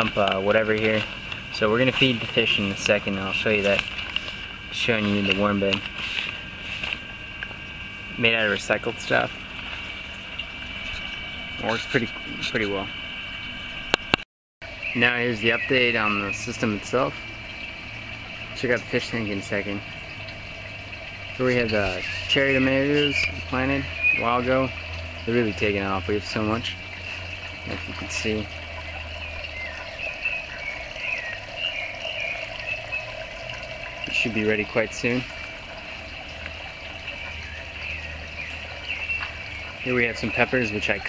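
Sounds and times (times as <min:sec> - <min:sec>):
low hum: 0:00.0 - 0:41.0
water trickling and gurgling: 0:00.0 - 0:41.0
bubbling chirps: 0:14.7 - 0:41.0.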